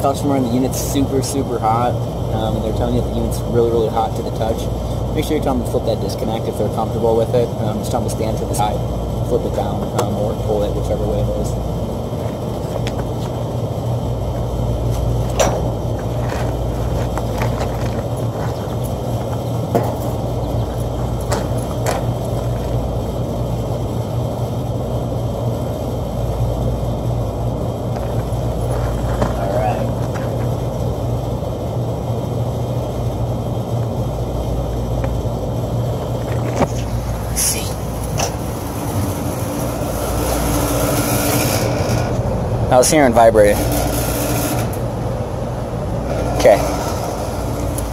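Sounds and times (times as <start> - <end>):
air conditioning hum: 0.0 - 47.9.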